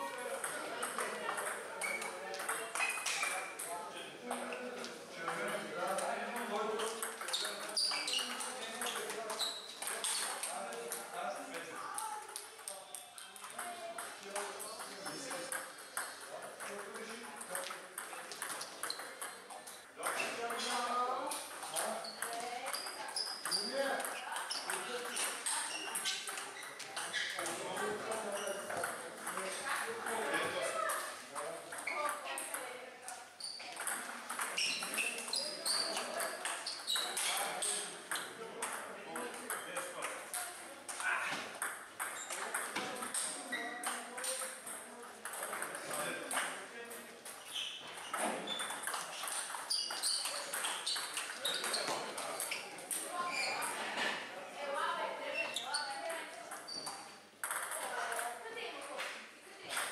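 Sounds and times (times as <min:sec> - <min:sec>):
table tennis ball clicking: 0:21.3 - 0:26.5, 0:56.5 - 0:58.3.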